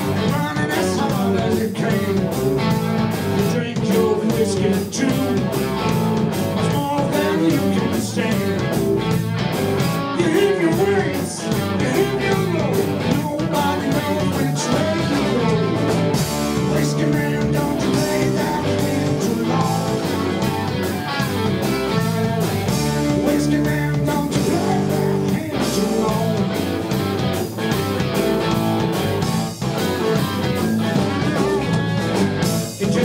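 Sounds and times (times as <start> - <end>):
bass guitar: 0.0 - 33.0
drum kit: 0.0 - 33.0
electric guitars: 0.0 - 33.0.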